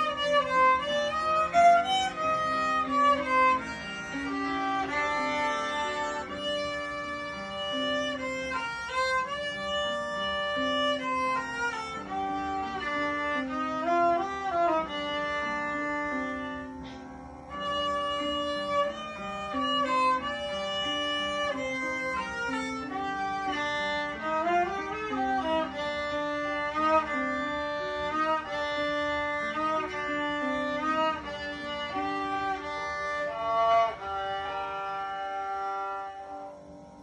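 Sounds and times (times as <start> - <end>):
solo violin melody: 0.0 - 37.0.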